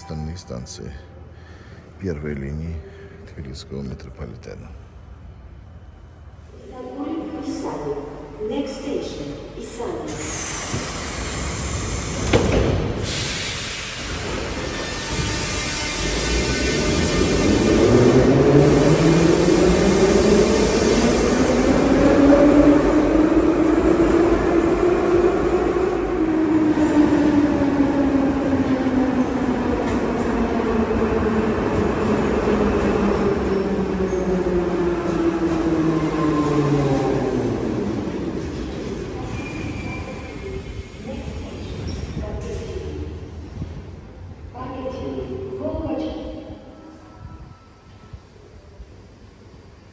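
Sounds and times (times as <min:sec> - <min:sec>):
train braking: 0:10.0 - 0:23.1, 0:31.4 - 0:42.8.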